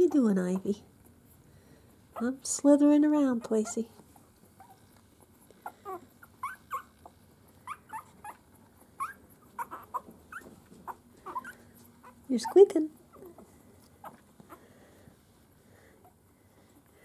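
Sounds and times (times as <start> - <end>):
puppies squeaking: 3.3 - 14.6.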